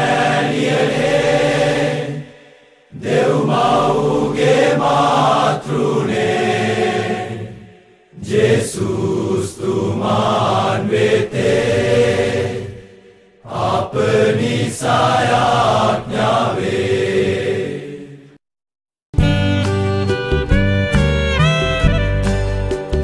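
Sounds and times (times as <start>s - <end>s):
hymn sung in long phrases: 0.0s - 18.4s.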